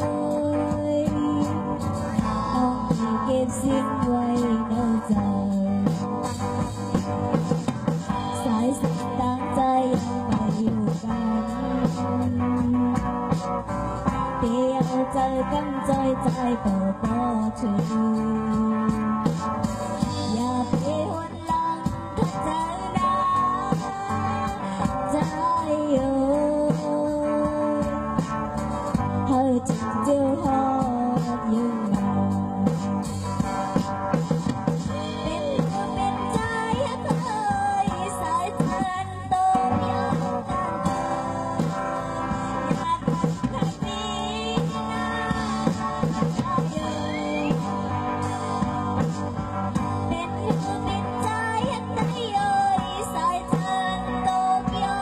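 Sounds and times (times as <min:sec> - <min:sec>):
amplified backing music: 0:00.0 - 0:55.0
woman singing into microphone: 0:00.0 - 0:55.0.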